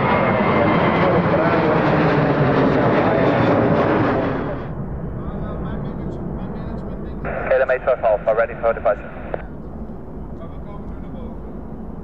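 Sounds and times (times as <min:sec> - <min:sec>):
jet engines roaring with whine: 0:00.0 - 0:12.0.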